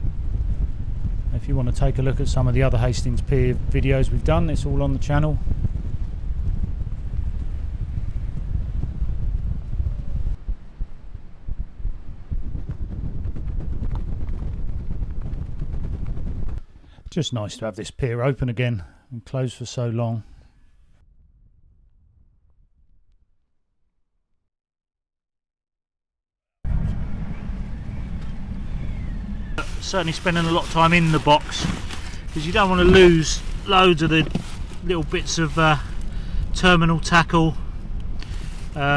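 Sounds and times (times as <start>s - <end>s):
strong wind buffeting microphone: 0.0s - 17.0s, 26.7s - 38.9s.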